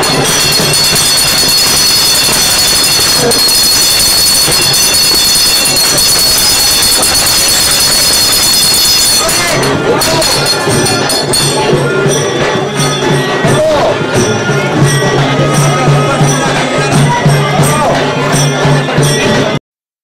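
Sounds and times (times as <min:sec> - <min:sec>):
high metallic ringing: 0:00.0 - 0:19.5
many voices together: 0:00.0 - 0:19.6.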